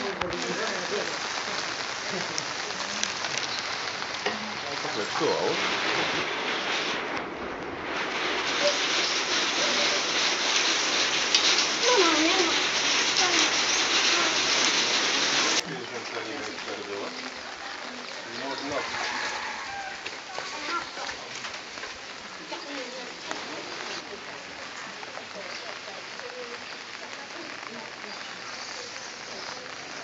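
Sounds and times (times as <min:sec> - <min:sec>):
faint voices: 0:00.0 - 0:30.0
steady rain falling: 0:00.0 - 0:30.0.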